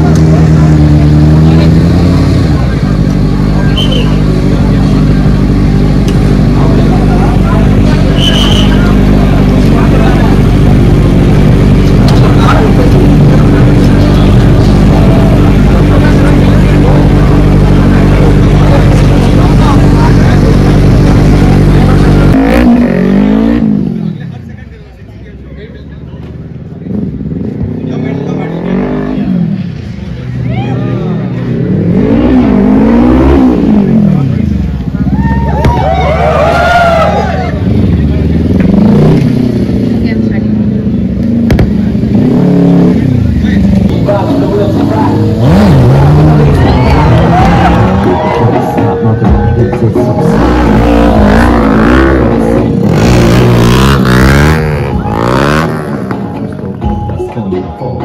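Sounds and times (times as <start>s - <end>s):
motorcycle engines idling: 0.0s - 22.4s, 33.8s - 42.2s, 42.9s - 47.3s
engine revving: 0.0s - 24.2s, 26.9s - 30.2s, 30.9s - 35.1s, 36.4s - 56.7s.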